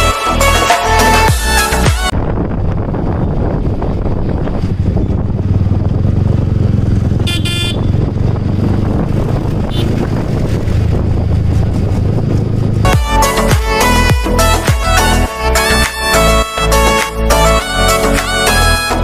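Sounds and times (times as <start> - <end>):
wind rushing over microphone: 2.0 - 13.5
motorcycle engine running: 2.2 - 15.0
vehicle horn toot: 7.2 - 8.1, 9.6 - 10.1.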